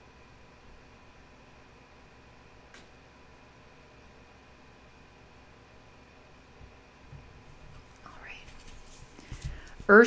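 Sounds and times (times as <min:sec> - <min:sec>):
woman speaking: 0:08.0 - 0:08.5, 0:09.8 - 0:10.0
card deck rustling and tapping: 0:08.5 - 0:10.0.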